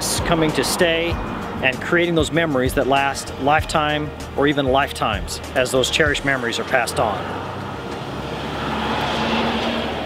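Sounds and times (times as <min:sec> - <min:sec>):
road vehicle passing: 0:00.0 - 0:04.4, 0:05.3 - 0:10.0
traffic noise rushing: 0:00.0 - 0:10.0.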